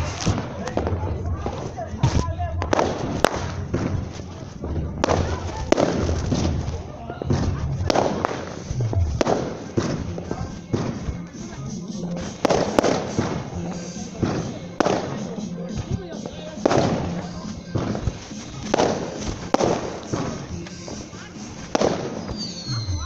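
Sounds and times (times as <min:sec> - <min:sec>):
fireworks bangs with echo: 0:00.0 - 0:23.0.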